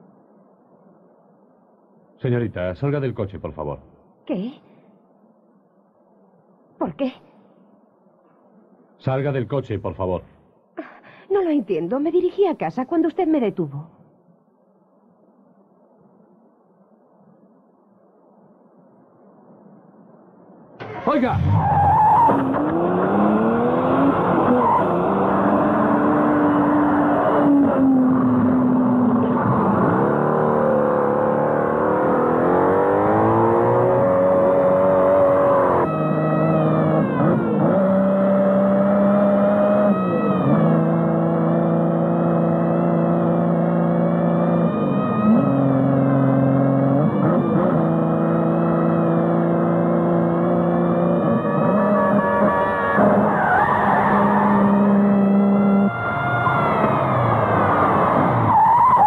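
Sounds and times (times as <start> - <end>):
sports car engine revving: 22.2 - 55.9.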